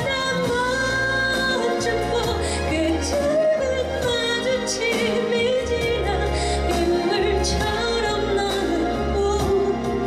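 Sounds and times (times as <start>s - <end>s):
instrumental accompaniment: 0.0s - 10.0s
steady bass: 0.0s - 10.0s
woman singing a slow ballad: 0.0s - 10.0s.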